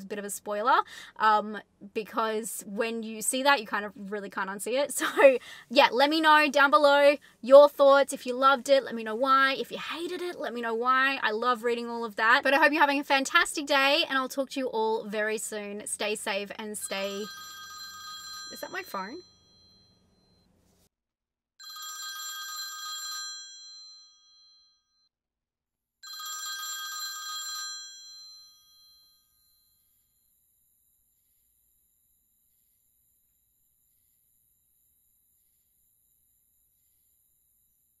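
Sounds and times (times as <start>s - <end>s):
telephone bell ringing: 16.9s - 20.5s, 21.6s - 25.0s, 26.0s - 29.8s.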